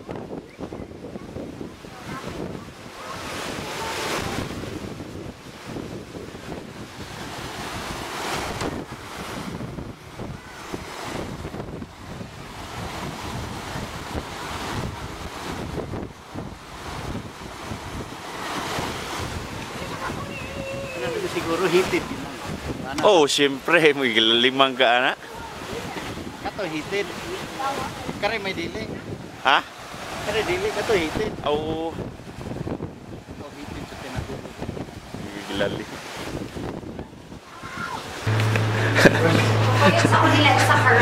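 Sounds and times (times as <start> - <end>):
wind gusting on microphone: 0.0 - 24.0, 25.2 - 41.0.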